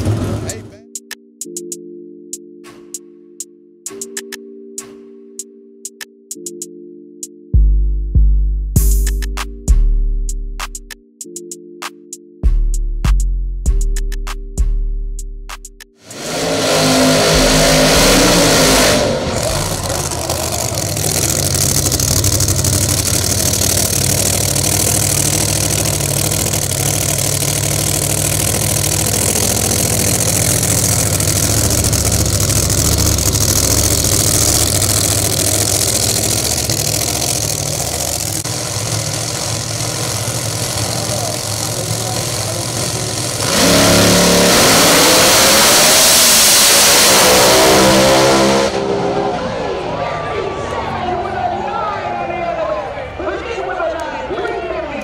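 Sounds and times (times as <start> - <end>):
drag car engine revving: 0.0 - 0.7, 16.0 - 51.0.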